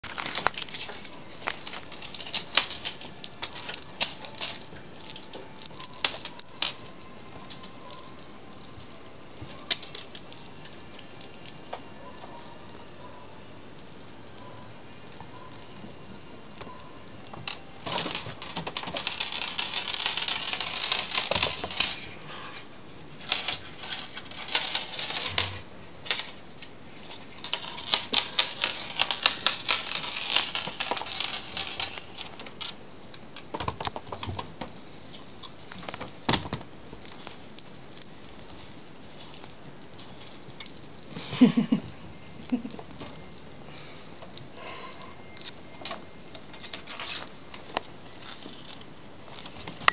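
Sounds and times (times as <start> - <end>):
metal trinkets jingling: 0.0 - 22.2, 23.2 - 26.4, 27.1 - 47.4.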